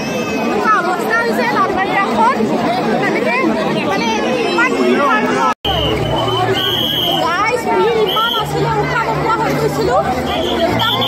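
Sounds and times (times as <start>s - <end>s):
dense crowd chattering: 0.0s - 11.0s.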